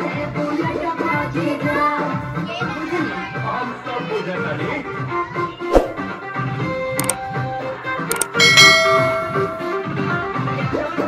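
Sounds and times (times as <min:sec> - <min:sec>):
mouse clicks: 0:08.1 - 0:08.4
bright bell chime: 0:08.1 - 0:10.0.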